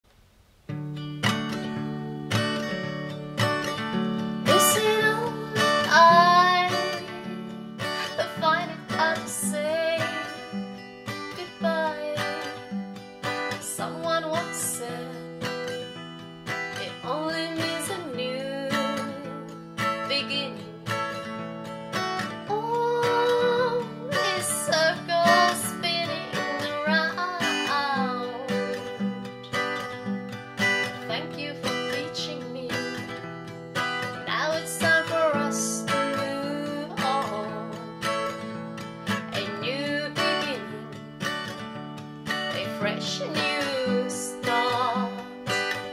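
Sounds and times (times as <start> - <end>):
acoustic guitar: 0.0 - 45.9
woman singing: 3.7 - 15.9, 16.5 - 21.3, 21.9 - 41.4, 42.3 - 45.9.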